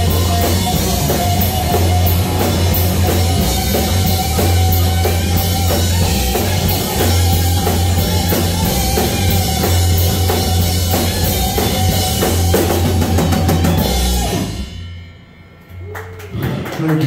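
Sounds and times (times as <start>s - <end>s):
drum kit hits: 0.0s - 15.0s
bass guitar: 0.0s - 16.8s
distorted electric guitar: 0.0s - 16.8s.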